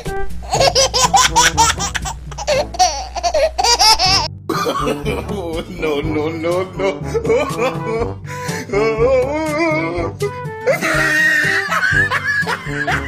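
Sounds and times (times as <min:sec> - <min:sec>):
music with steady bass: 0:00.0 - 0:13.0
high-pitched laughter: 0:00.5 - 0:05.0, 0:10.7 - 0:13.0.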